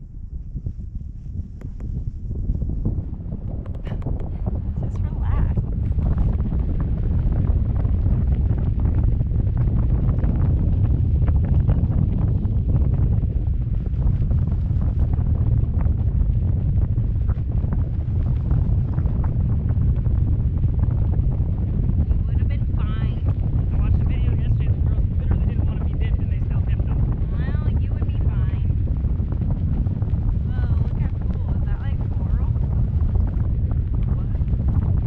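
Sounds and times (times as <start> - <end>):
wind buffeting microphone: 0.0 - 35.0.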